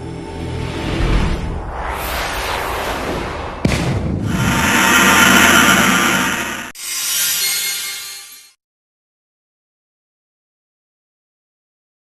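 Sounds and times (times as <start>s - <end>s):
music: 0.0s - 1.6s
loud rushing noise: 0.8s - 6.8s.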